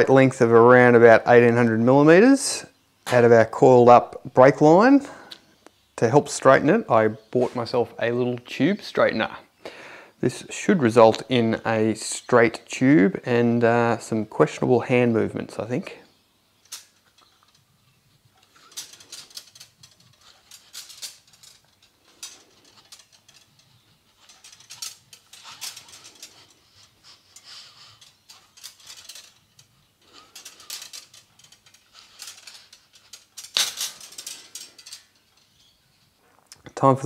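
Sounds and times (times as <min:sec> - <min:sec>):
metallic clicking and scraping: 0:16.6 - 0:36.7.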